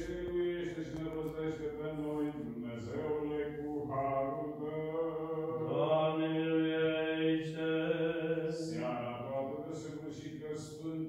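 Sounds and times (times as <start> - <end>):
steady low drone note: 0.0 - 1.8
man chanting liturgical chant: 0.0 - 11.0.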